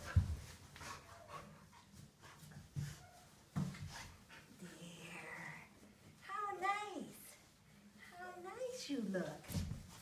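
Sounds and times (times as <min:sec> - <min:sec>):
dog panting: 0:00.0 - 0:05.2.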